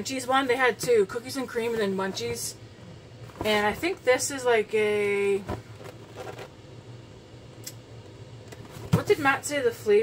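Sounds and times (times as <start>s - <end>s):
low steady hum: 0.0s - 10.0s
cardboard case handling: 5.4s - 6.5s.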